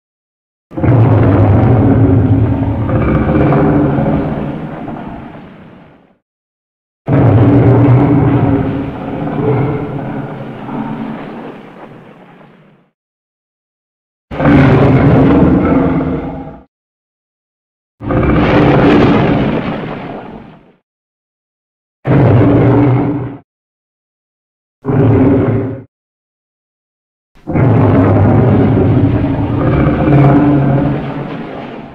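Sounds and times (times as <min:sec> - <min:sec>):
monster roar: 0:00.8 - 0:05.0, 0:07.1 - 0:11.1, 0:14.3 - 0:16.7, 0:18.0 - 0:19.4, 0:22.1 - 0:23.3, 0:24.9 - 0:25.8, 0:27.4 - 0:31.3.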